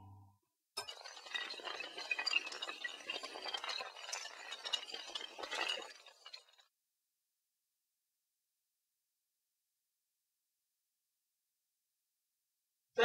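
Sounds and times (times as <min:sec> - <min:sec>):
small tiles toppling: 0:00.9 - 0:06.6.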